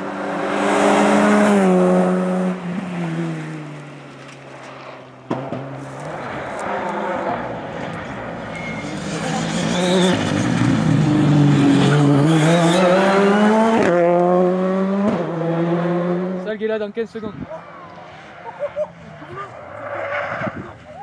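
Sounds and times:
rally car engine pulling hard: 0.0 - 16.5.

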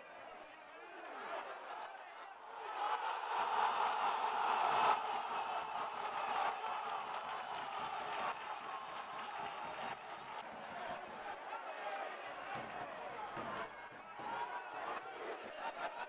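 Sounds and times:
stadium crowd cheering: 0.0 - 16.0.

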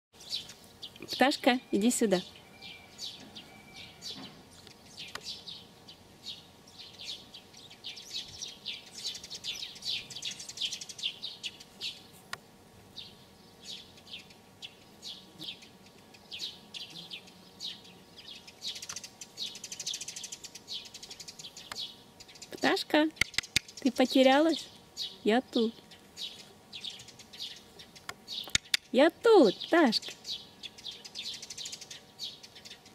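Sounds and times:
songbirds chirping: 0.1 - 32.9.

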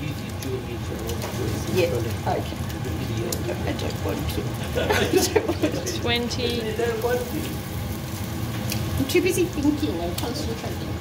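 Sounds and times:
bread sizzling in hot oil: 0.0 - 11.0
low steady hum: 0.0 - 11.0.

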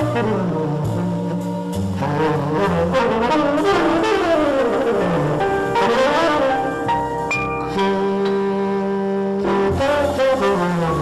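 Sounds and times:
horns playing melody: 0.0 - 11.0
live jazz ensemble: 0.0 - 11.0
sustained bass notes: 0.0 - 11.0.

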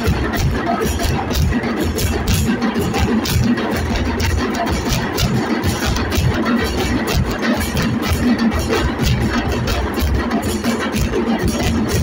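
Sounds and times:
deep bass drum beats: 0.0 - 12.0.

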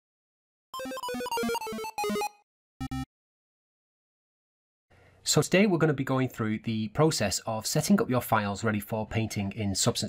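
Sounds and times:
clipped electronic notes jingle: 0.8 - 3.1.

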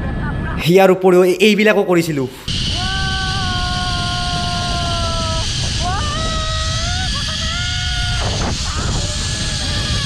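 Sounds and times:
wind rushing on microphone: 2.4 - 10.0
pulley trolley running on cable: 2.7 - 10.0.

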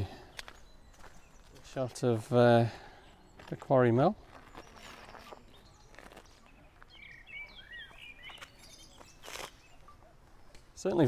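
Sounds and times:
bird chirping: 0.0 - 11.0
soft footsteps on a path: 0.0 - 11.0.

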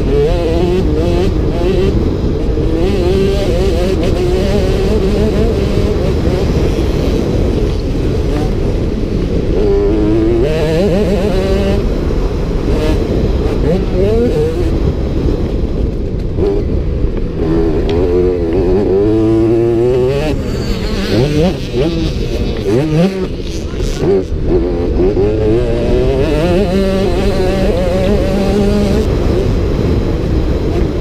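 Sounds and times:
motocross bike engine revving: 0.0 - 31.0.

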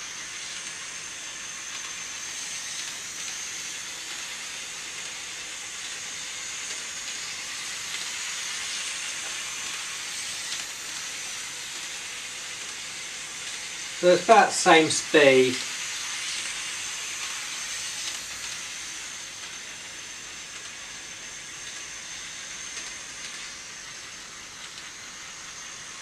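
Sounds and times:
model train motor whirring: 0.0 - 26.0
thin high whine: 13.0 - 20.4.

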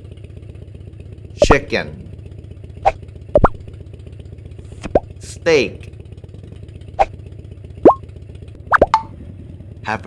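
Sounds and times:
cartoon plop blips: 2.8 - 3.7, 7.8 - 8.0, 8.7 - 9.1.

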